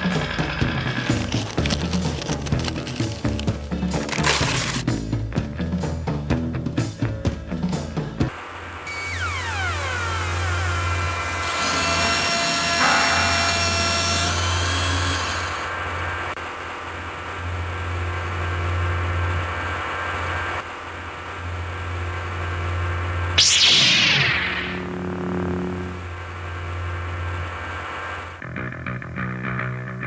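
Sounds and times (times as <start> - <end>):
pulsing low machine hum: 7.3 - 28.3
falling whistle-like tones: 23.4 - 24.9.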